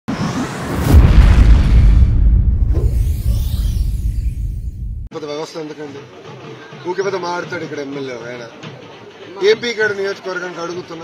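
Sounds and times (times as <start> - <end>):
rising whoosh: 0.1 - 5.1
deep boom with low rumble: 0.7 - 5.1.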